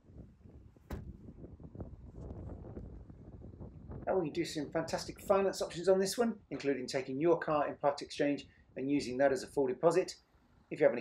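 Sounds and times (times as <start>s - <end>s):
wind buffeting microphone: 0.0s - 6.5s.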